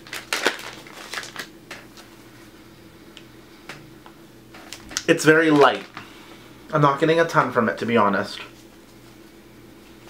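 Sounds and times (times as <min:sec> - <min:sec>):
plastic bag crinkling: 0:00.0 - 0:02.1, 0:04.6 - 0:06.1.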